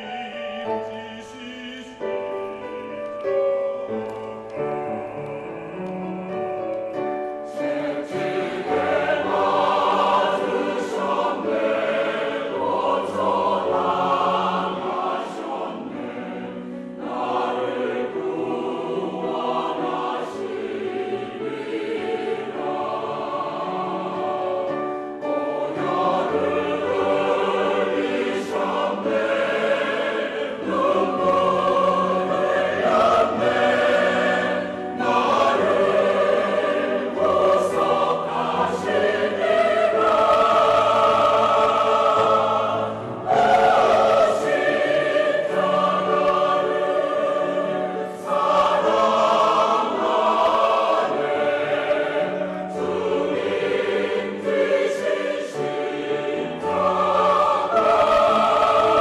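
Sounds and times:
male soloist singing: 0.0 - 3.0
church choir singing: 0.0 - 59.0.

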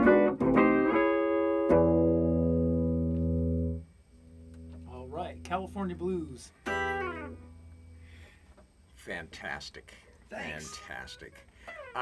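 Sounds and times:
electric guitar chord ringing: 0.0 - 8.2
sung blues note: 0.0 - 8.2.

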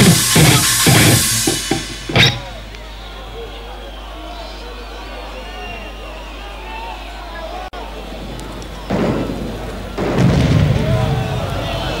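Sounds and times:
heavy metal band final hit: 0.0 - 2.8
crowd murmur: 0.0 - 12.0
crowd shouts: 0.0 - 12.0.

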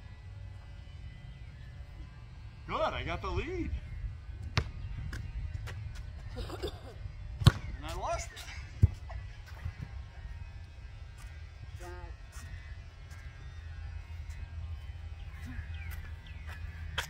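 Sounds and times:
steady low rumble: 0.0 - 17.0.

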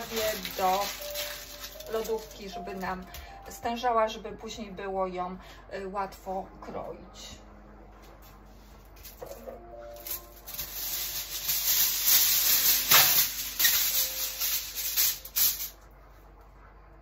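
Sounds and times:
aluminium foil crinkling: 0.0 - 3.3, 9.0 - 15.8.

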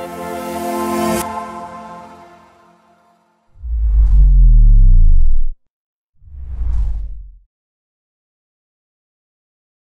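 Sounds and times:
whoosh sound effect: 3.6 - 5.6, 6.3 - 7.4.

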